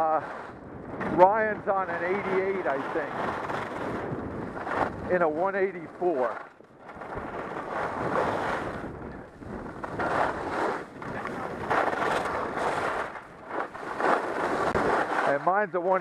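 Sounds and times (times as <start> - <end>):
wind buffeting microphone: 0.0 - 15.3
skis carving on packed snow: 0.0 - 16.0.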